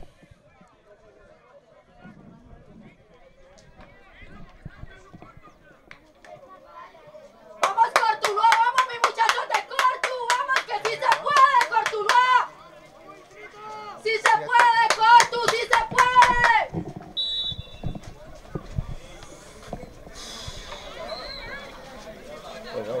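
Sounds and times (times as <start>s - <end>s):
faint distant voices: 0.0s - 23.0s
rhythmic hand clapping: 7.6s - 12.4s, 14.2s - 16.8s.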